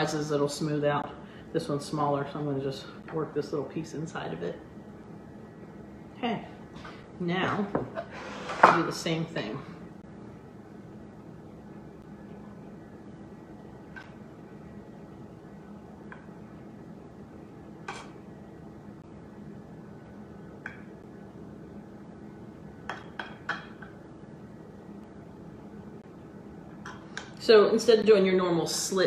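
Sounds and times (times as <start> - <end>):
faint steady hum: 0.0 - 29.0.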